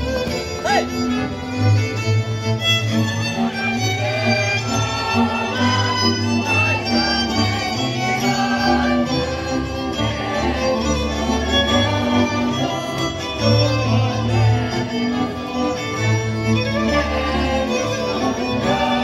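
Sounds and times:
bowed string bass line: 0.0s - 19.0s
folk dance music with fiddles: 0.0s - 19.0s.

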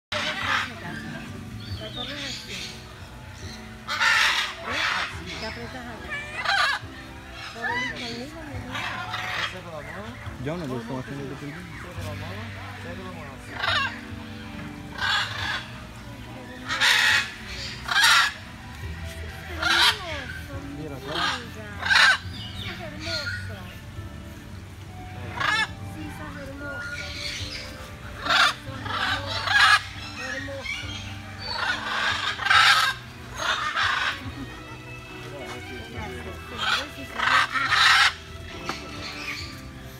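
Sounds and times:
macaws squawking: 0.1s - 39.9s.

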